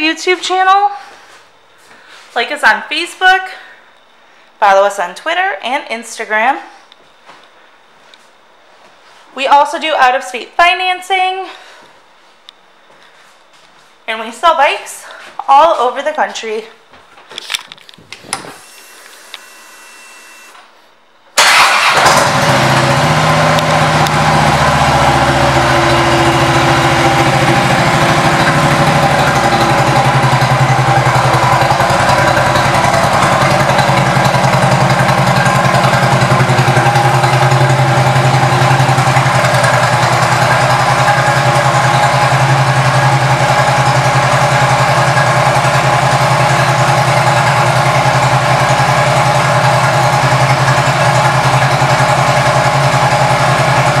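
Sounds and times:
motorcycle engine idling: 0:21.4 - 0:54.0.

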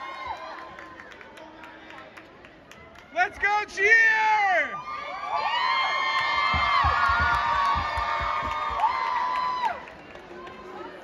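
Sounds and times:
crowd cheering and screaming: 0:00.0 - 0:00.8, 0:04.6 - 0:10.0.

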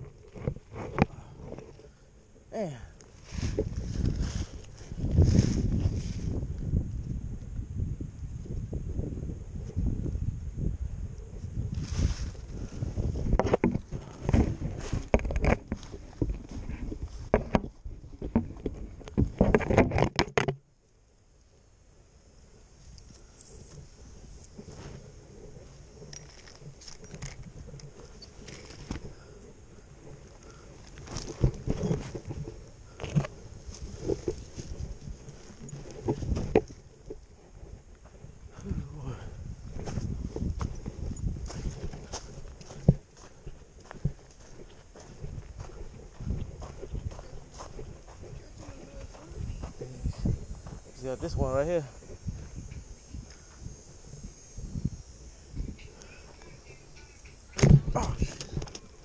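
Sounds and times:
rustling and bumps on microphone: 0:00.0 - 0:01.9, 0:03.1 - 0:07.1, 0:11.3 - 0:20.6, 0:23.6 - 0:29.2, 0:30.0 - 0:38.3, 0:39.6 - 0:53.4, 0:57.5 - 0:59.0.

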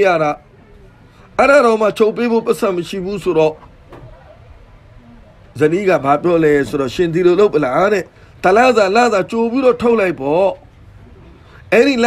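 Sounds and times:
faint background hiss: 0:00.0 - 0:12.0
man lecturing: 0:01.4 - 0:03.6, 0:05.6 - 0:10.6, 0:11.7 - 0:12.0.

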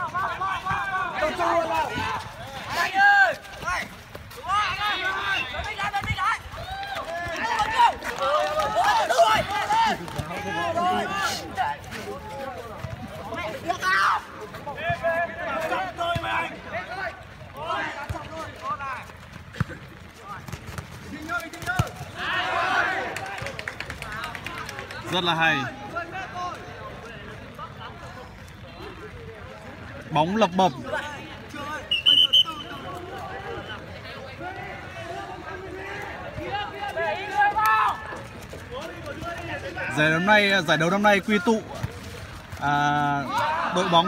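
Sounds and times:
players calling out: 0:00.0 - 0:44.0.

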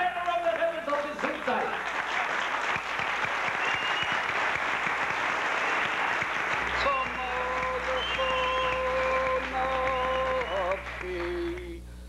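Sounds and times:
audience applause: 0:00.0 - 0:11.6.

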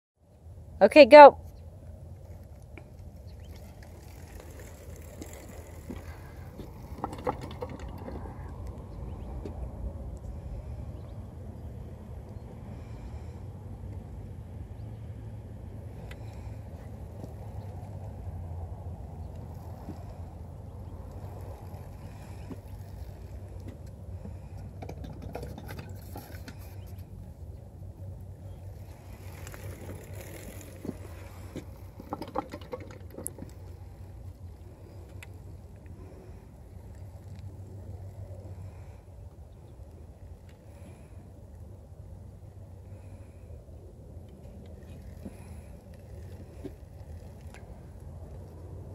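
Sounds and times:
wind rumble on microphone: 0:01.5 - 0:48.9.

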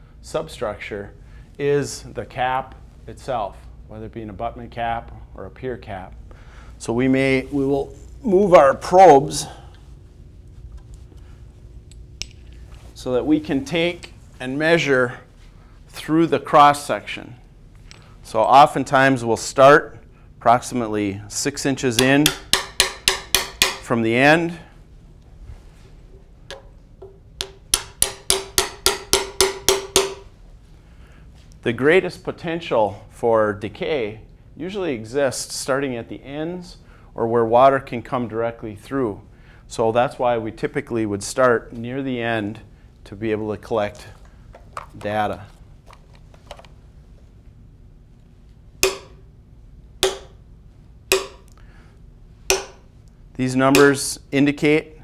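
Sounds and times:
hammer tapping steel probe: 0:22.0 - 0:23.9, 0:26.5 - 0:30.3, 0:48.8 - 0:49.3, 0:50.0 - 0:50.4, 0:51.1 - 0:51.6, 0:52.5 - 0:52.9, 0:53.7 - 0:54.1.

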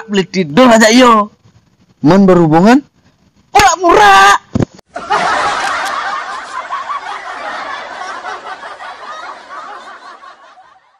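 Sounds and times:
canned laughter: 0:05.0 - 0:10.9.

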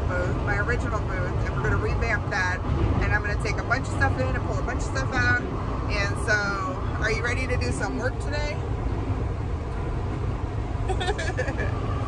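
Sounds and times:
van engine and road noise: 0:00.0 - 0:12.0.

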